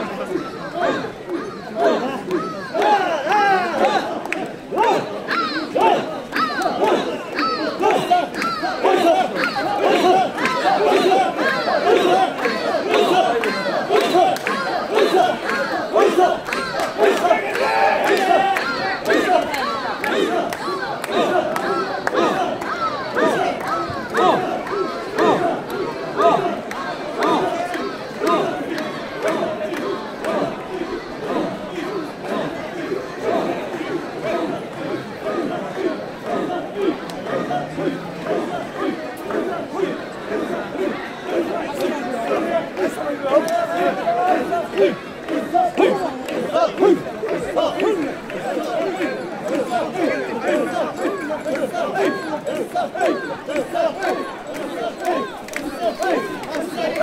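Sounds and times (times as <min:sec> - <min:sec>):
crowd of voices: 0:00.0 - 0:57.0
people chanting and shouting rhythmically: 0:00.0 - 0:57.0.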